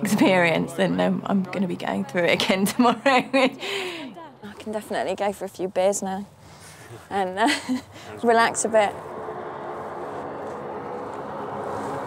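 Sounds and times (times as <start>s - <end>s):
propeller plane engine drone: 7.8s - 12.0s.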